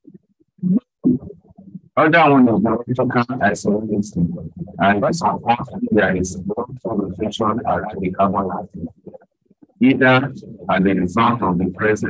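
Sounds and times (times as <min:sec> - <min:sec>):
muffled broken-up voice: 0:00.6 - 0:01.4, 0:02.0 - 0:09.2, 0:09.8 - 0:12.0.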